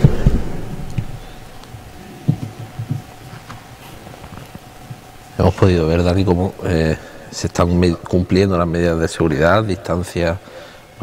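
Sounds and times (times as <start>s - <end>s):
dull low thumps: 0.0s - 3.2s
faint steady hum: 0.0s - 11.0s.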